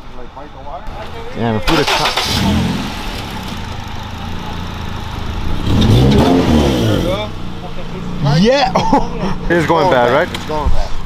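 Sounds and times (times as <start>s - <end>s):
car engine idling and revving: 0.0s - 11.0s.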